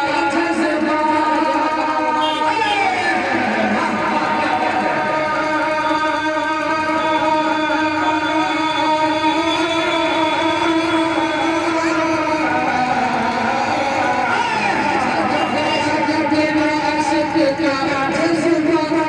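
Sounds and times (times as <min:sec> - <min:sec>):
man singing into a microphone: 0:00.0 - 0:19.0.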